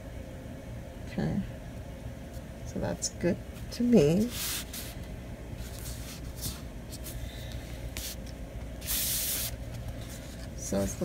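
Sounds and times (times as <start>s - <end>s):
steady low hum: 0.0s - 11.0s
hands swishing paper: 4.2s - 5.0s, 7.9s - 10.5s.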